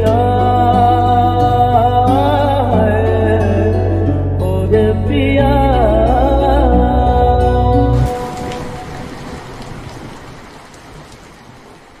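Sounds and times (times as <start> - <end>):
rain hiss with drop ticks: 7.9 - 12.0.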